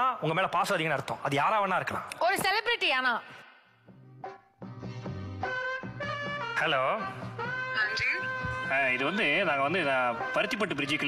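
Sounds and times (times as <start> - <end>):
background music: 1.6 - 11.0.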